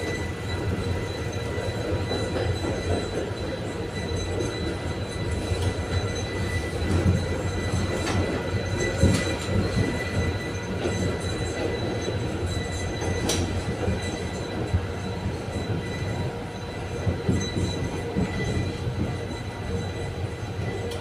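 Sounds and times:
low rumble of tram wheels: 0.0 - 21.0.

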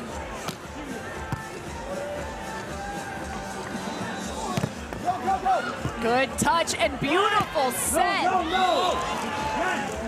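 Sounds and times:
faint background music: 0.0 - 10.0
volleyball struck by hand: 0.4 - 1.6, 4.5 - 5.0.

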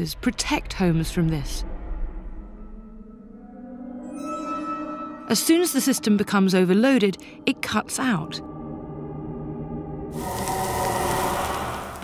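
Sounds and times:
soft background music: 0.0 - 12.0
steel wool fizzing hiss: 10.2 - 12.0.

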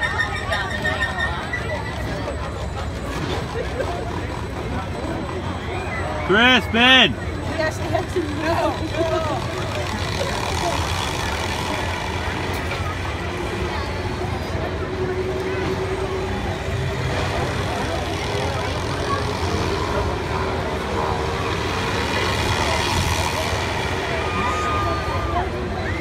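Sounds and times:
faint voices: 0.0 - 26.0
swing ride mechanical drone: 0.0 - 26.0.

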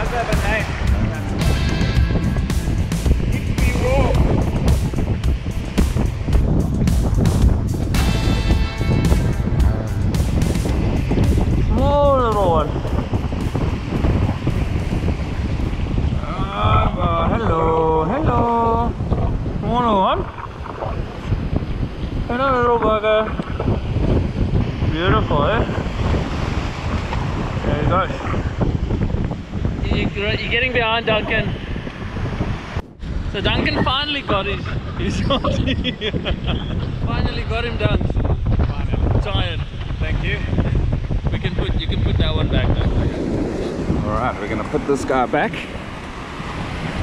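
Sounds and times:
breaking surf: 0.0 - 47.0
wind buffeting microphone: 0.0 - 47.0.

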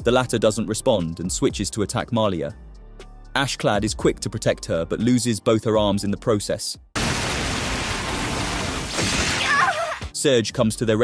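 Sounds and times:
fiery blast sound effect: 7.0 - 9.8.

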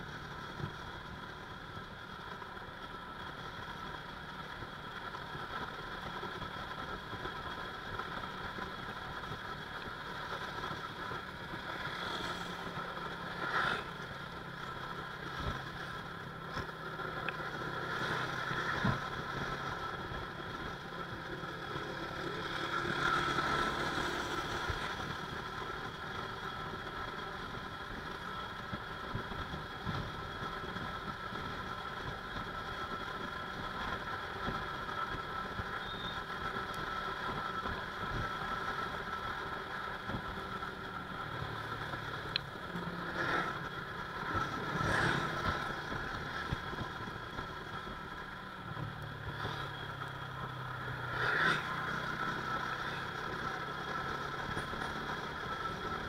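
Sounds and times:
motorcycle engine cruising: 0.0 - 56.0
road and wind noise: 0.0 - 56.0.

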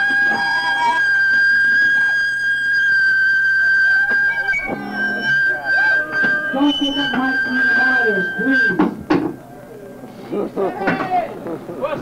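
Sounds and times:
amplifier feedback whistle: 0.0 - 9.5.

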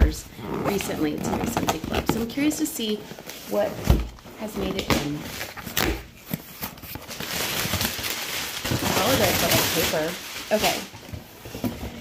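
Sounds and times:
packing paper rustling: 0.8 - 12.0.

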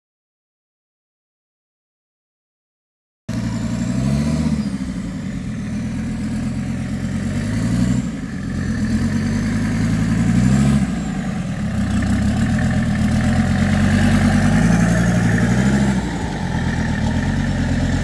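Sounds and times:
diesel engine revving: 3.3 - 18.0.

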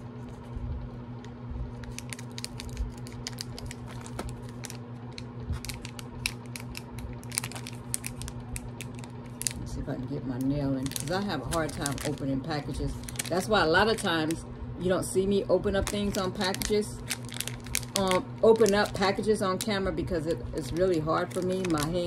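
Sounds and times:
plastic pouch crinkling: 1.7 - 9.7, 10.7 - 14.4, 15.7 - 19.8, 20.6 - 22.0.

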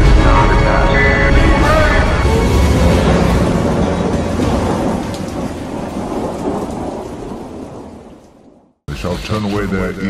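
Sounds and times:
thunder rumbling: 0.0 - 8.8
rain hiss: 2.0 - 8.7.

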